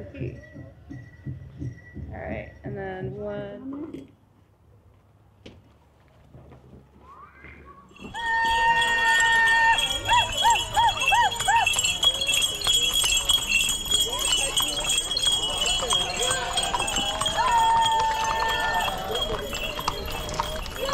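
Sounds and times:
crowd voices: 7.8 - 20.9
horses' hooves clopping on asphalt: 8.0 - 20.9.

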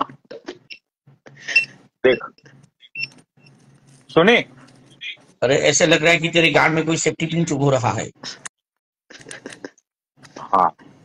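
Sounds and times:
person speaking: 4.0 - 8.2.

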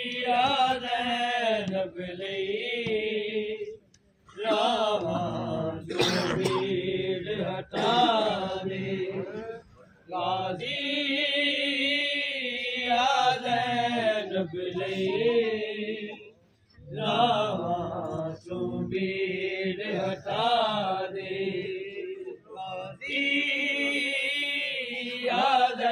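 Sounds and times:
person chanting a lament: 4.4 - 12.1, 13.0 - 16.2.

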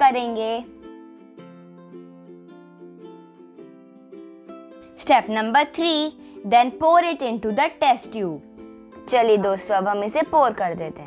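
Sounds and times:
soft plucked-string music: 0.0 - 11.0.

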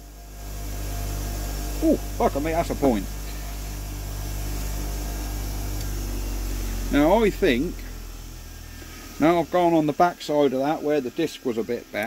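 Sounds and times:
bench grinder running: 0.0 - 12.0.

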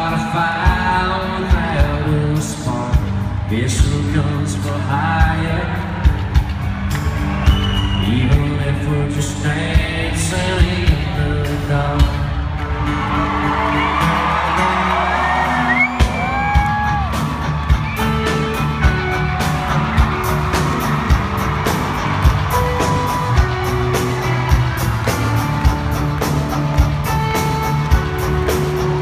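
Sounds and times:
live rock band music: 0.0 - 29.0
crowd whooping: 6.1 - 8.4, 12.5 - 29.0
steady kick drum beat: 16.0 - 29.0.

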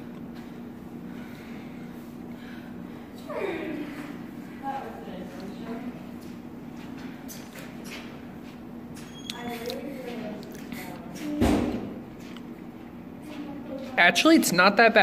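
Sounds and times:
steady low hum: 0.0 - 15.0
faint voices in a hallway: 0.4 - 15.0.

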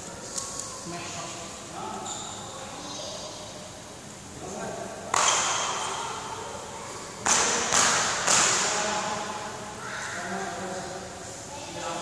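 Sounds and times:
racket hitting shuttlecock: 5.1 - 5.8, 7.2 - 8.7.

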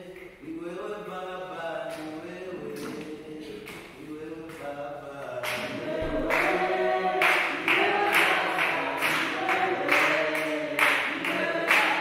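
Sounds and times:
group singing unaccompanied: 0.0 - 12.0.

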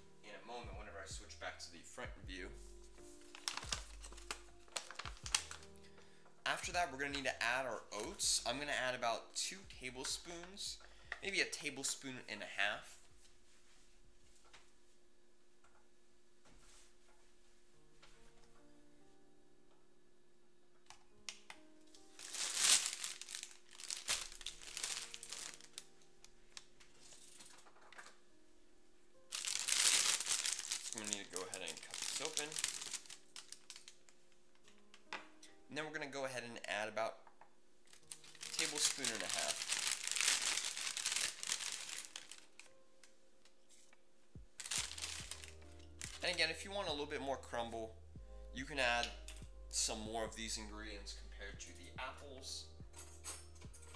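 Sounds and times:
faint background music: 0.0 - 53.9
plastic bag crinkling: 3.2 - 5.8, 22.0 - 28.0, 29.2 - 34.2, 37.9 - 42.8, 44.6 - 46.5.

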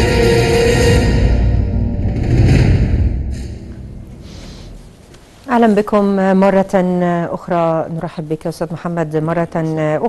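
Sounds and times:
background music: 0.0 - 5.0
deep impact hit: 1.0 - 4.9.

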